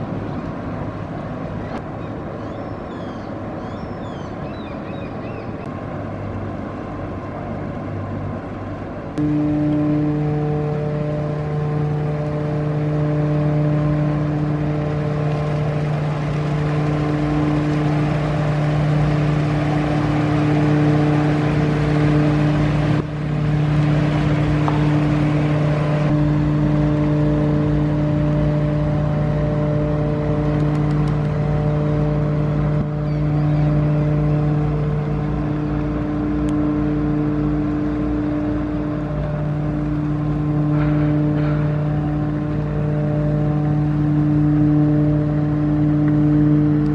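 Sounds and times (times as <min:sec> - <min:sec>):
boat diesel engines humming: 0:00.0 - 0:46.9.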